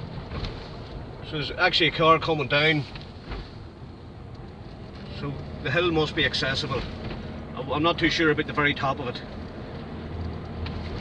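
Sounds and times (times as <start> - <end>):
vehicle cabin rumble: 0.0 - 11.0.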